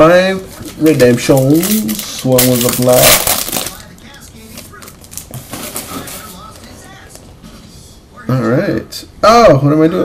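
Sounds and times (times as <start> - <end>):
cards being handled: 0.5 - 7.2
wrapper crinkling: 0.5 - 7.2.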